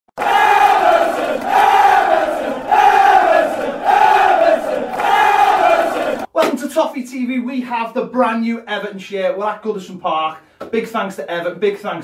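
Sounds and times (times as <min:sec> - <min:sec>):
football crowd chanting: 0:00.2 - 0:06.3.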